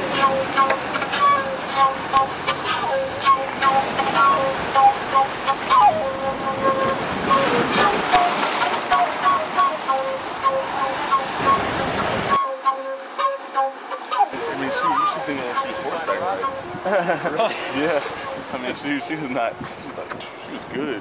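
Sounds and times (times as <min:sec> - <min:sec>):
ocean surf: 0:00.0 - 0:21.0
wind noise: 0:14.7 - 0:21.0.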